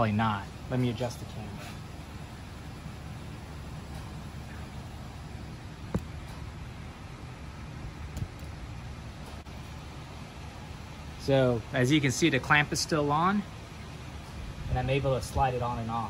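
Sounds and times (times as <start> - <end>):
low background hum: 0.0 - 16.0.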